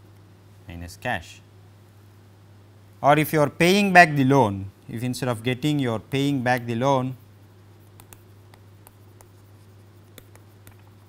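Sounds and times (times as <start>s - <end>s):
low electrical hum: 0.0s - 11.0s
stylus tapping on tablet screen: 7.8s - 11.0s.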